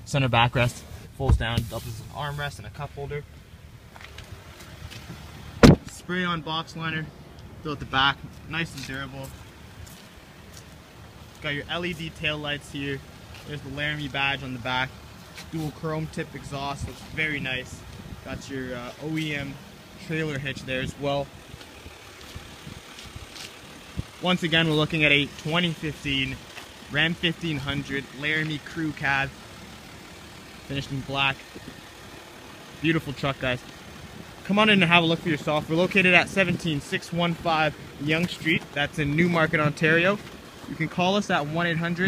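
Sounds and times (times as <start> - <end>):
diesel engine idling: 0.0 - 42.0
truck door shutting with a thud: 5.6 - 5.9.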